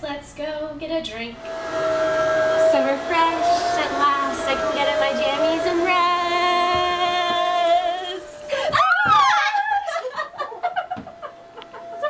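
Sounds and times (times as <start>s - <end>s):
steady held note: 1.2s - 8.6s.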